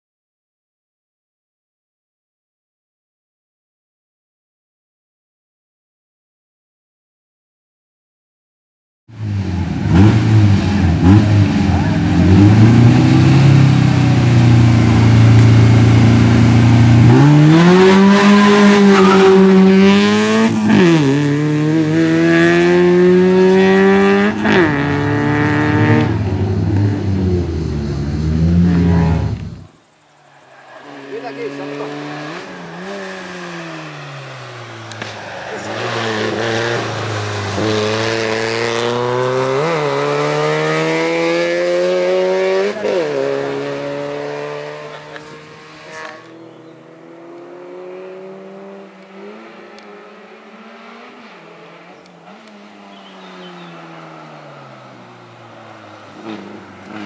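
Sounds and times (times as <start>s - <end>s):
race car engine accelerating: 9.2s - 57.0s.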